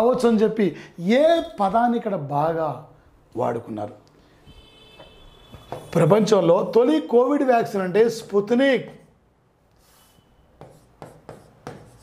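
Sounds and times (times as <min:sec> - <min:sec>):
marker pen on whiteboard: 0:04.5 - 0:12.0.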